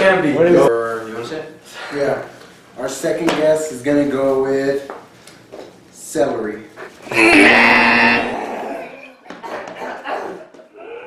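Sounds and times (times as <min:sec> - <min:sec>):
wrong answer buzzer: 0:07.2 - 0:08.4.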